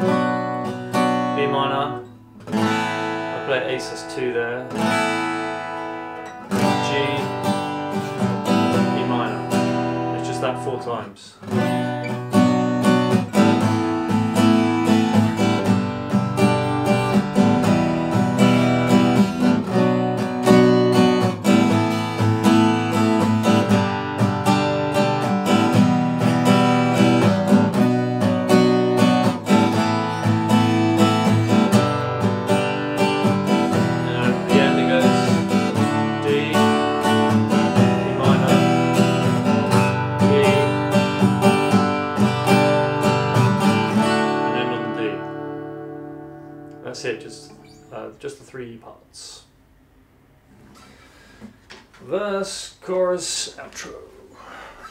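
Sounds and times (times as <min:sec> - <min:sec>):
acoustic guitar strummed: 0:00.0 - 0:48.7.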